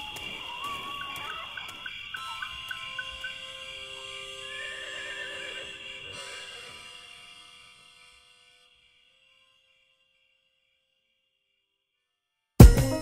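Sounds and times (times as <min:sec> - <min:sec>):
crickets chirping: 0:00.0 - 0:12.6
horse whinnying: 0:04.2 - 0:07.2.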